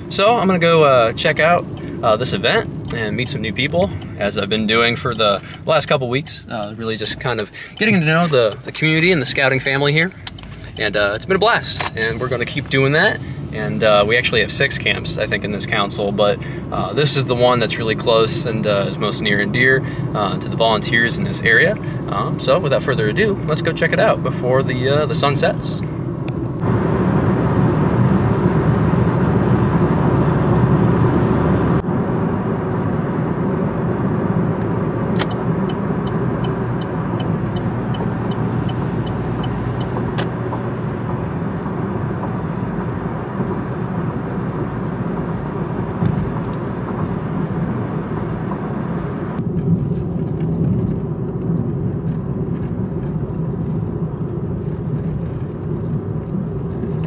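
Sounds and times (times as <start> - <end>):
road and engine rumble in car: 0.0 - 57.0.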